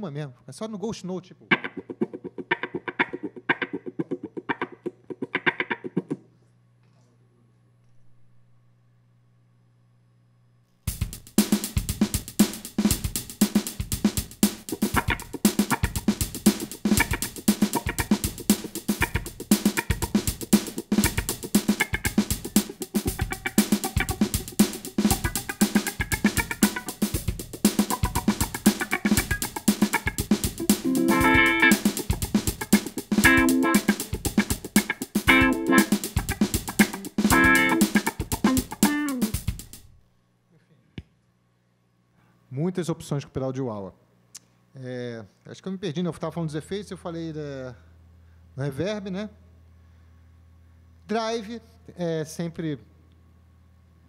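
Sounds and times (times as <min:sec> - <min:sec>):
funk electric guitar with wah: 0:01.5 - 0:06.2, 0:14.7 - 0:39.5.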